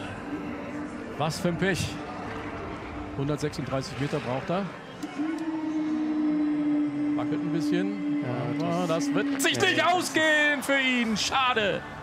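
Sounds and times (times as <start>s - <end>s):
steady horn-like tone: 5.0s - 10.3s.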